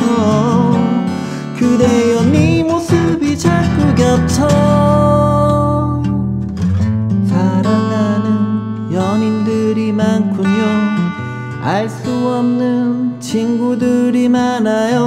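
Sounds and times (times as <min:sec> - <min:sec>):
man singing: 0:00.0 - 0:06.3, 0:07.2 - 0:15.0
acoustic guitar strumming: 0:00.0 - 0:15.0.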